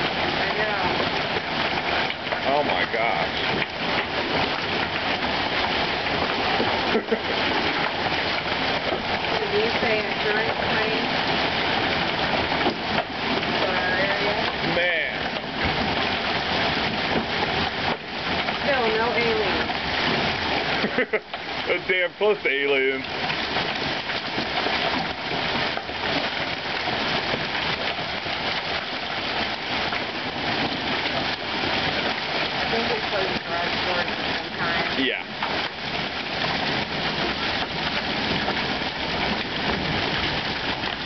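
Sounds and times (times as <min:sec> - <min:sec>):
hail striking ground: 0:00.0 - 0:41.0.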